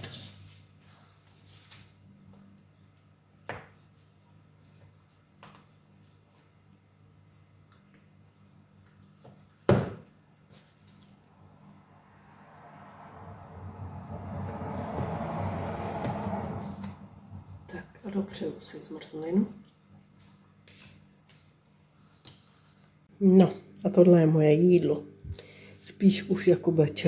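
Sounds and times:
rushing noise: 11.3 - 17.7.

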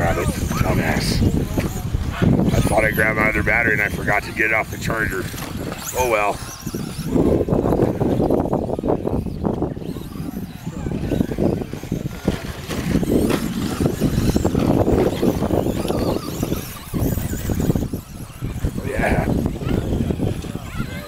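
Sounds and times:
indistinct voices: 0.0 - 21.0
remote control trucks racing: 0.0 - 21.0.

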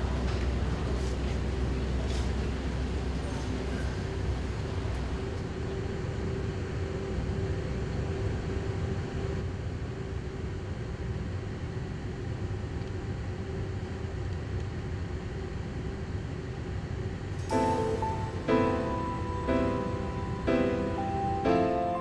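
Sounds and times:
faint constant hum: 0.0 - 22.0
low rumble and hiss: 0.0 - 22.0.

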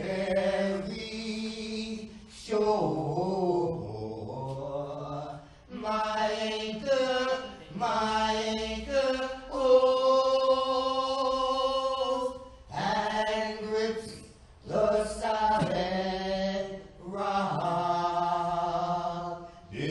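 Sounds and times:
slow sacred singing: 0.0 - 19.9.

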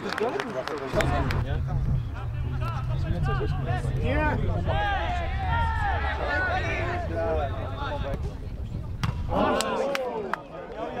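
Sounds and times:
football kicked: 8.9 - 9.3.

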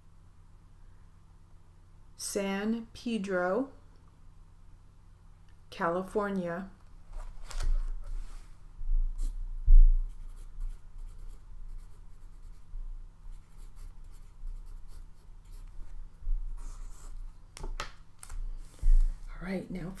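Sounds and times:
paper rustling on a desk: 7.1 - 8.6
dull low thumps: 8.8 - 10.2.

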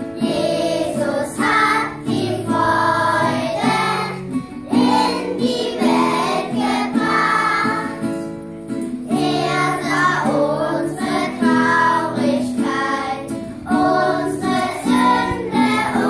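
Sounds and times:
children's choir singing: 0.0 - 8.4, 9.0 - 16.0
strummed acoustic guitar: 0.0 - 16.0.

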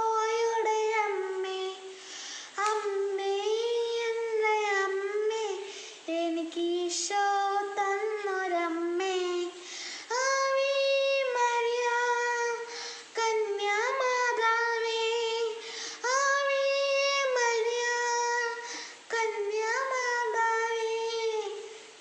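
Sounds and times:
boy singing solo: 0.0 - 22.0.

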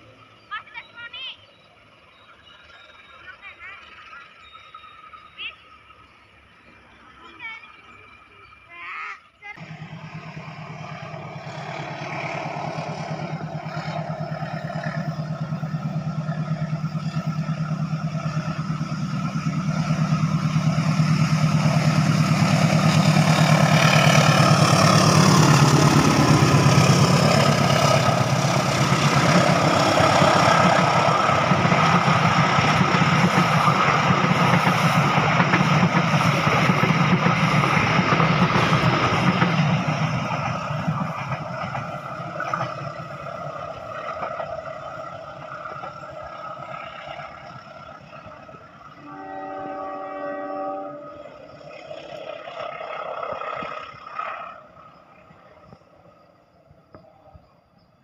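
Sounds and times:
train coaches rumbling by: 0.0 - 58.0
locomotive engine hum passing: 9.4 - 57.9.

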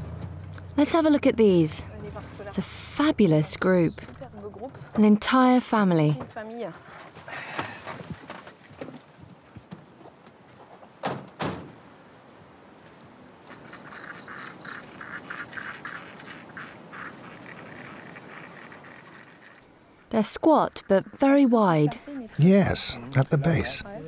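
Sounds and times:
car door shutting: 11.0 - 11.8.

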